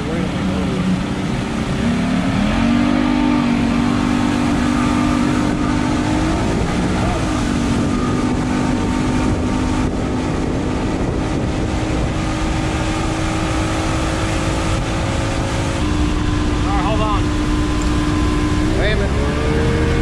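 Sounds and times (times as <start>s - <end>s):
outboard motor running: 0.0s - 20.0s
water rushing: 0.0s - 20.0s
wind rushing: 0.0s - 20.0s.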